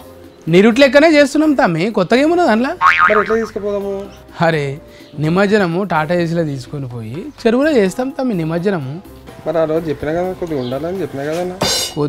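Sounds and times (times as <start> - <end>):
comic boing sound effect: 2.8 - 3.6.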